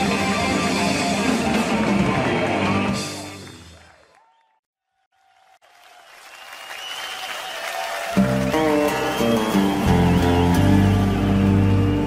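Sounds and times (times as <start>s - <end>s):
crowd applause: 3.1s - 12.0s.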